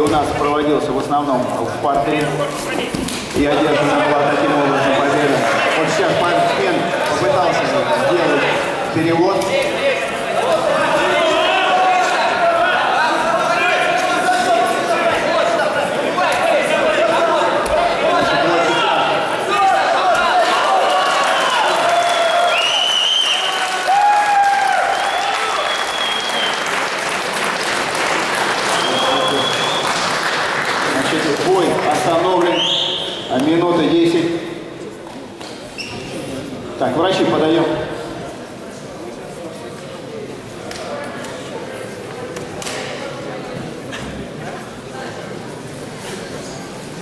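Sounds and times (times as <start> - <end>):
spectators shouting and cheering: 9.8 - 30.2
clapping: 21.0 - 32.6.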